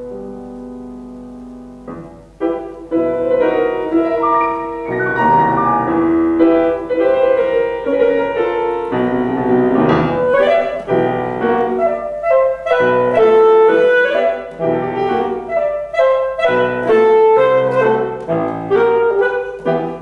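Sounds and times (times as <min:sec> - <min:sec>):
alto saxophone melody: 0:00.0 - 0:20.0
piano accompaniment: 0:00.0 - 0:20.0.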